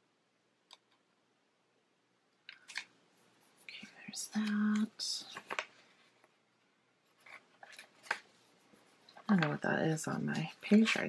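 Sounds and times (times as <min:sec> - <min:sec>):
paper rustling: 0:02.6 - 0:06.4, 0:07.1 - 0:11.0.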